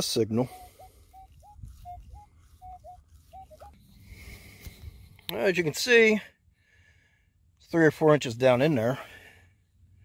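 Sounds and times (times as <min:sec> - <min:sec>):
metal detector beeps: 0:00.4 - 0:03.8.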